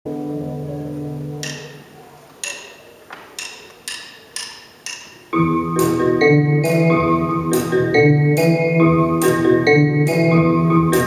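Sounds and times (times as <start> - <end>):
drumsticks clicking together: 1.4 - 5.3.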